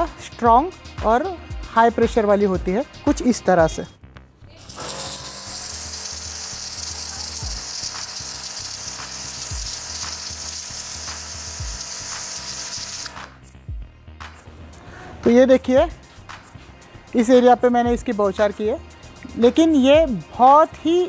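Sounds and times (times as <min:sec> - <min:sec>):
pressure washer jet hissing: 0:04.7 - 0:13.2.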